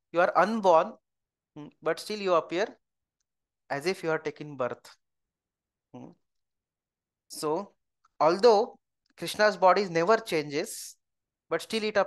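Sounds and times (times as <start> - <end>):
man saying hmm: 6.0 - 6.2.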